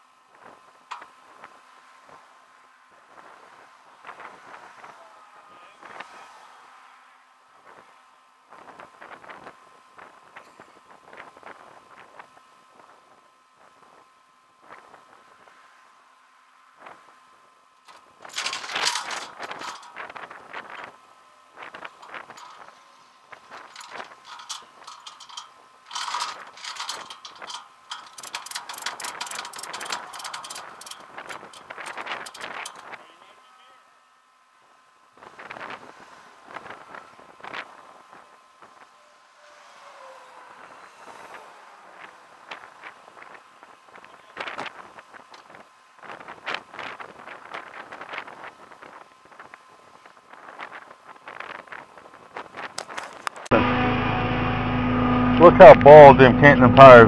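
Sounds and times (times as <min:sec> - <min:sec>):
road noise: 0:00.0 - 0:08.6, 0:15.2 - 0:46.6, 0:52.8 - 0:57.0.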